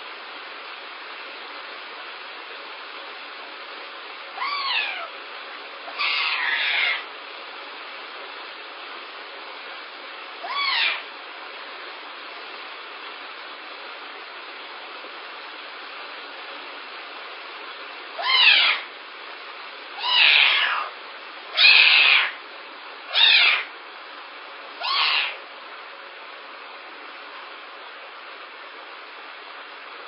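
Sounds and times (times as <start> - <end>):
steady background hiss: 0.0 - 30.0
young pet high-pitched cries: 4.3 - 5.2, 5.8 - 7.1, 10.4 - 11.1, 18.2 - 18.9, 20.0 - 22.4, 23.1 - 23.7, 24.8 - 25.4.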